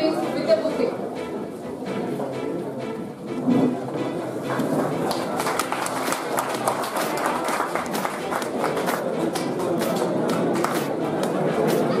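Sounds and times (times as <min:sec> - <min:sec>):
audience clapping: 0:04.5 - 0:11.9.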